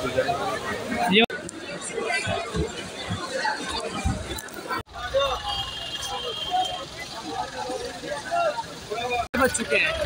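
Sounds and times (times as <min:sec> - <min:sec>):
people chattering: 0:00.0 - 0:10.0
traffic rumble with buses: 0:00.0 - 0:10.0.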